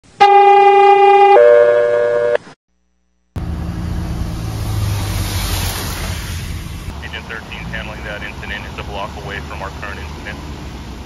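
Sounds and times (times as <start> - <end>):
loud two-note horn tone: 0.2 - 2.4
water gushing with low rumble: 4.4 - 10.8.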